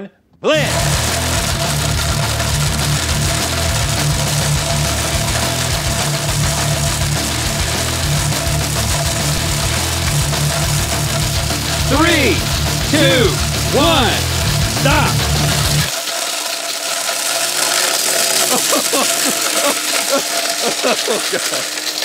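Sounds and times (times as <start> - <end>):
rock music with distorted guitar: 0.6 - 15.9
blenders grinding with loud whine: 0.7 - 22.0.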